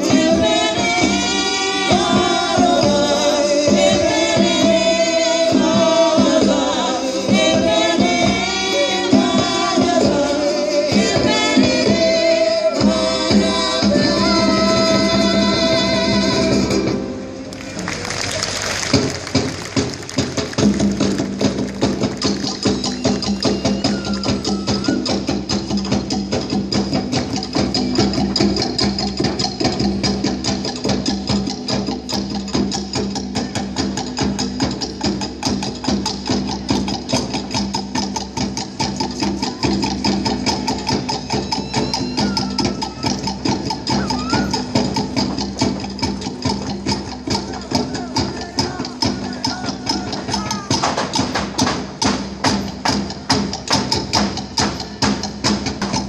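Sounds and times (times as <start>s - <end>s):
wooden and drum percussion: 0.0s - 56.0s.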